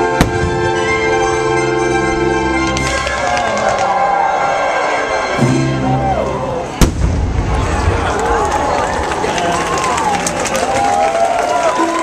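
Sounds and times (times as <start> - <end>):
crowd voices: 0.0 - 12.0
loud firework bang: 6.8 - 8.0.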